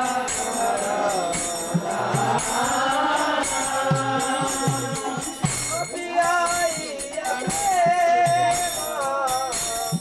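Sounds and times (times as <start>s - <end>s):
devotional chanting: 0.0s - 10.0s
hand cymbals jingling: 0.0s - 10.0s.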